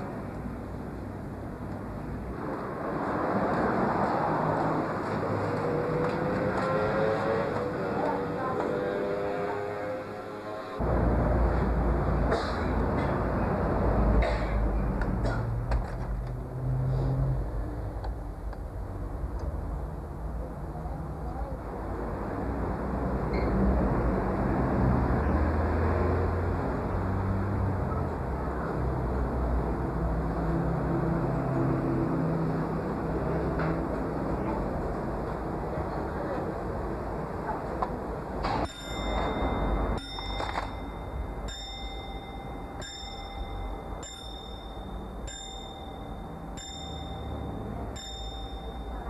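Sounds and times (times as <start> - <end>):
clock hammer striking bell: 38.6 - 49.0.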